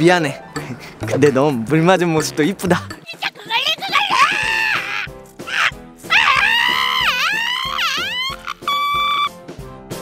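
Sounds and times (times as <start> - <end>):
background music: 0.0 - 10.0
high-pitched wavering screams: 4.0 - 9.3.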